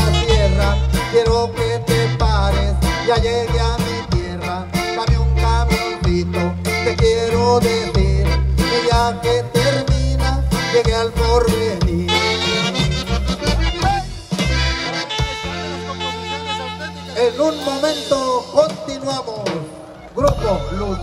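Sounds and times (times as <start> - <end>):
saxophone: 0.0 - 3.2, 11.9 - 18.0
electric bass: 0.0 - 19.3, 20.2 - 21.0
accordion: 0.0 - 21.0
guitars: 0.0 - 21.0
steady drum beat: 0.0 - 21.0.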